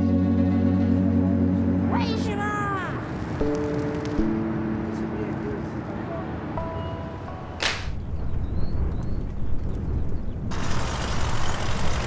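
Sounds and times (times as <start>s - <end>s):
whip crack: 7.6s - 8.0s.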